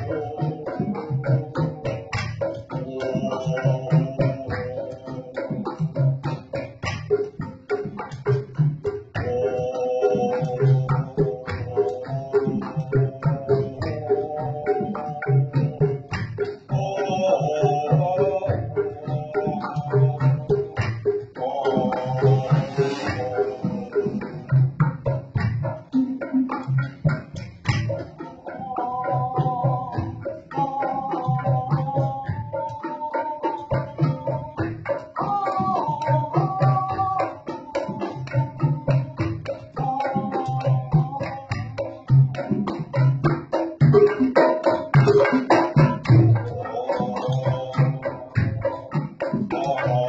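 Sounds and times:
man singing: 0.0 - 6.5, 8.5 - 24.8, 27.9 - 50.0
bamboo instrument thumping rhythm: 0.0 - 50.0
hand drums: 0.0 - 50.0.

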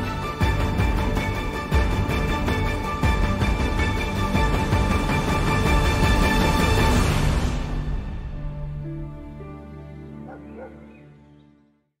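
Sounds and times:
dog barking: 10.2 - 10.9.

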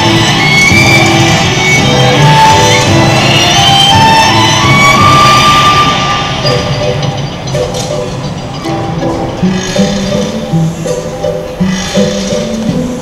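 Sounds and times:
music over loudspeakers: 0.0 - 13.0.

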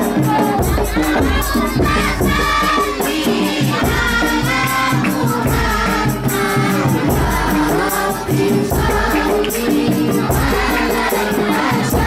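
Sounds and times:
bass drum beat: 0.0 - 12.0
group singing devotional song: 0.0 - 12.0
jingling frame drums: 0.0 - 12.0.

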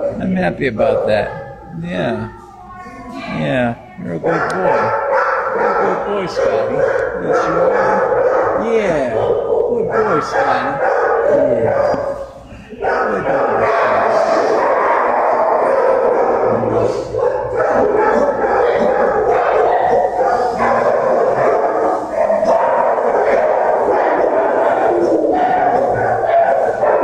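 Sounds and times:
many dogs barking: 0.0 - 27.0.

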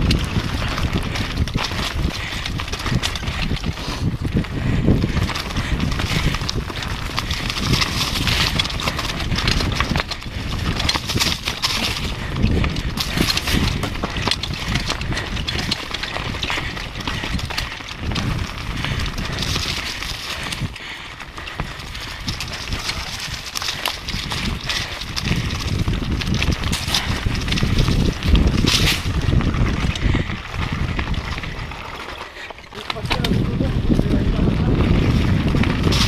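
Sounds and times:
mountain bike clattering over rocks: 0.0 - 36.0
wind rumbling on microphone: 0.0 - 36.0.

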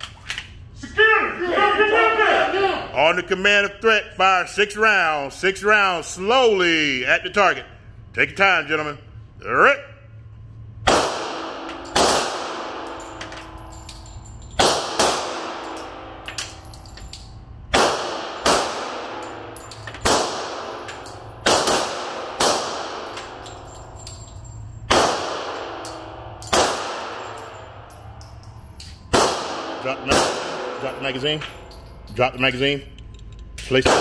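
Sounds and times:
pistol shots echoing indoors: 10.8 - 32.1, 33.0 - 34.0.

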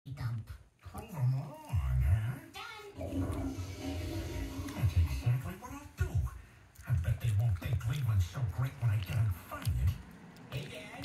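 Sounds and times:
deep cartoon voice from television: 0.1 - 11.0.

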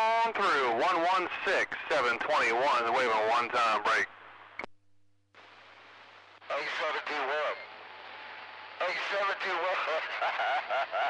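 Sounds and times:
voice over radio speaker: 0.0 - 4.1, 6.5 - 7.7, 8.8 - 11.0
radio static hiss: 0.0 - 4.7, 5.4 - 10.4.

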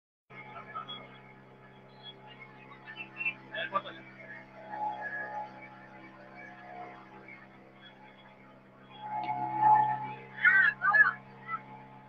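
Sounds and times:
boat engine droning: 0.3 - 12.0.

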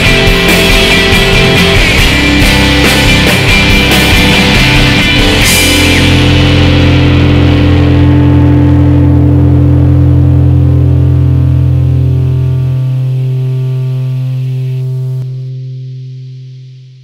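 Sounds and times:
distorted electric guitar chord ringing: 0.0 - 17.0.

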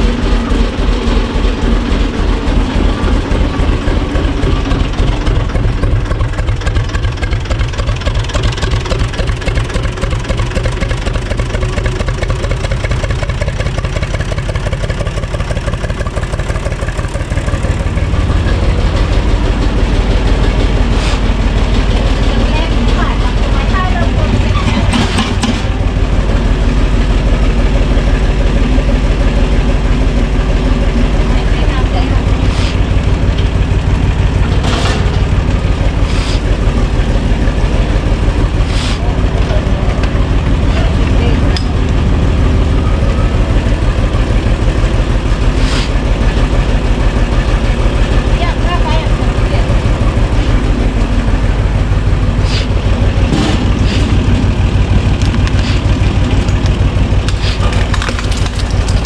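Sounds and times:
tractor diesel engine idling: 0.0 - 59.0.

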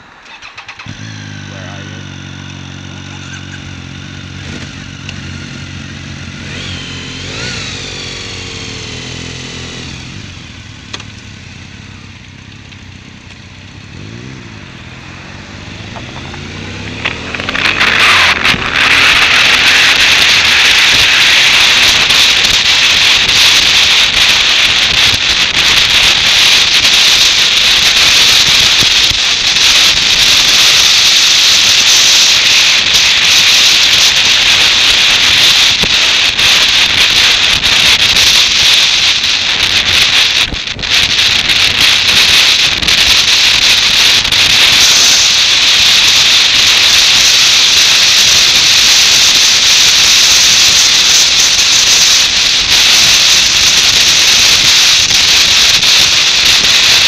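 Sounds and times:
wind and road noise: 0.0 - 57.0
motorcycle engine idling: 0.1 - 19.4.

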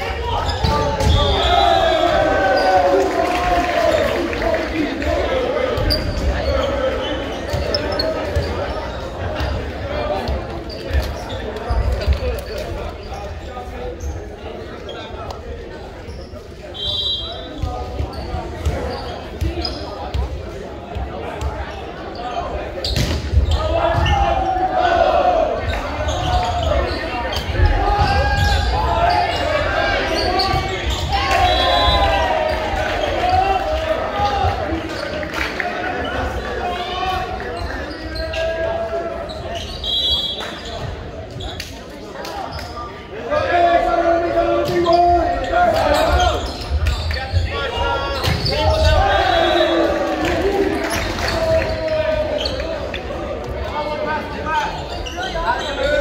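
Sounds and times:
players calling and chattering: 0.0 - 56.0.

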